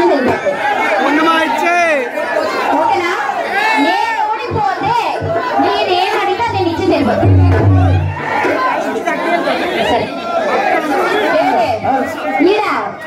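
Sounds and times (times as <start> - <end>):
crowd chatter in a large hall: 0.0 - 13.0
voices talking over one another: 0.0 - 13.0.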